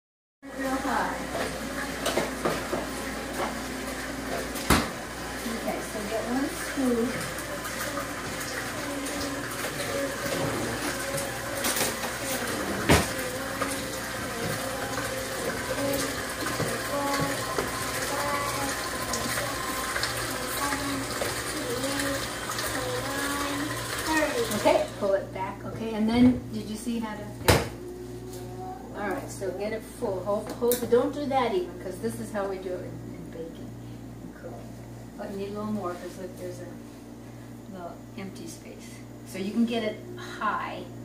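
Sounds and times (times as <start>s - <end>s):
steady low hum: 0.4s - 41.0s
electric hand mixer running: 0.6s - 25.4s.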